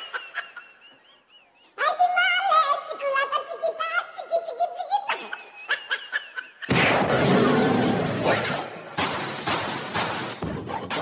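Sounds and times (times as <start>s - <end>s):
person laughing in high bursts: 0.0s - 1.8s, 4.2s - 6.7s.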